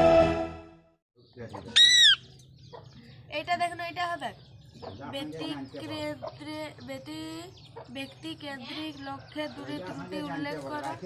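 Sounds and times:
parakeet call: 1.7 - 2.3.

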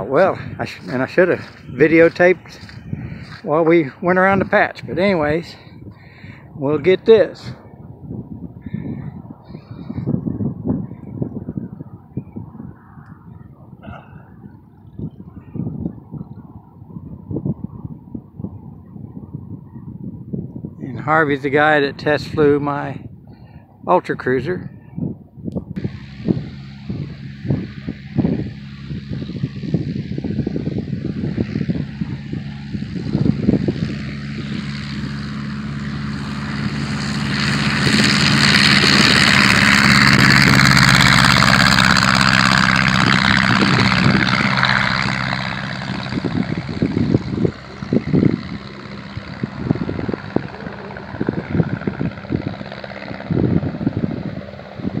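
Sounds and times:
light plane engine and propeller: 0.0 - 55.0.

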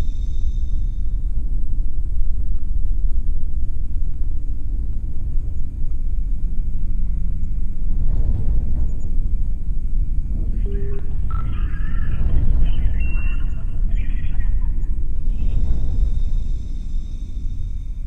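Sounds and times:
deep steady rumble: 0.0 - 18.0
crackly radio voice: 10.5 - 15.6
short beeps: 10.5 - 15.7.

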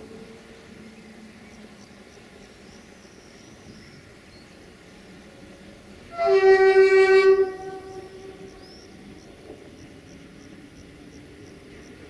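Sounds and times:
locomotive horn blast: 6.1 - 8.6.

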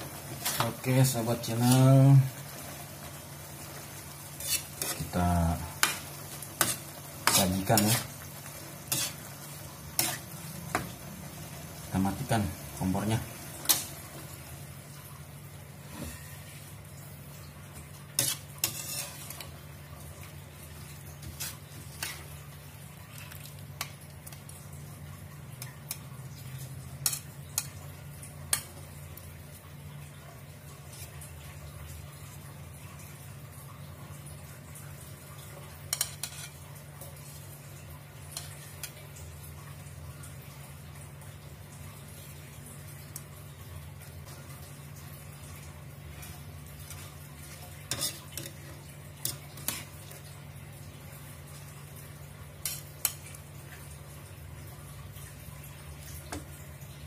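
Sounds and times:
metal spatula scraping a wok: 4.3 - 5.2, 6.6 - 8.1, 8.8 - 9.3, 10.0 - 10.3, 18.2 - 19.5, 36.0 - 36.6, 47.9 - 48.6, 49.2 - 49.9.

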